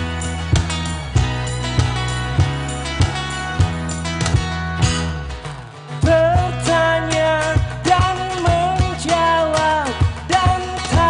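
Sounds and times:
acoustic guitar strumming: 0.0 - 11.0
electric bass: 0.0 - 11.0.

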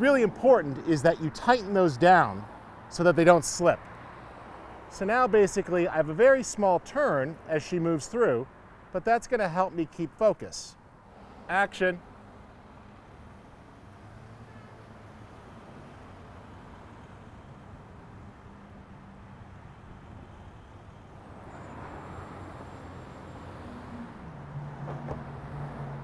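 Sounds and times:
road traffic engine hum: 0.0 - 26.0.

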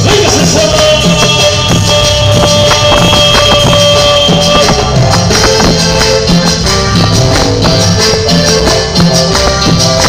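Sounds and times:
bass: 0.0 - 10.0
held keyboard notes: 0.0 - 10.0
shaken percussion: 0.0 - 10.0
timbales and congas beat: 0.0 - 10.0.

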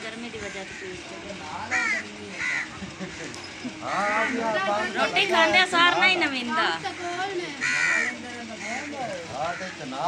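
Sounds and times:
crow cawing: 0.4 - 1.0, 1.6 - 4.7, 6.8 - 10.0.

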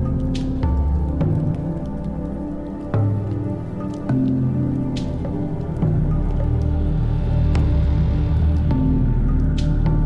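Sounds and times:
fire crackling: 0.0 - 10.0.

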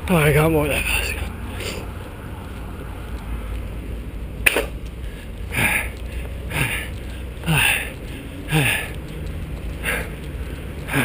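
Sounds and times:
low wind rumble: 0.0 - 11.0
sharp click: 4.4 - 4.8
man breathing hard: 5.0 - 9.1, 9.8 - 11.0.

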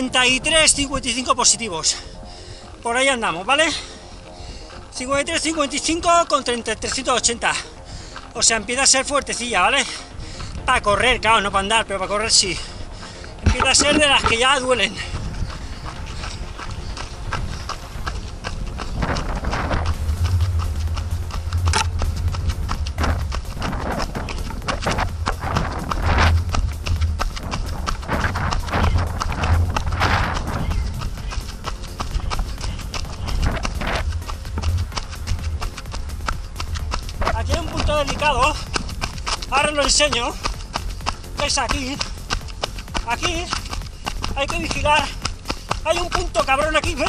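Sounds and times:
running footsteps on dirt: 0.0 - 47.0
low rumble: 13.4 - 39.6.

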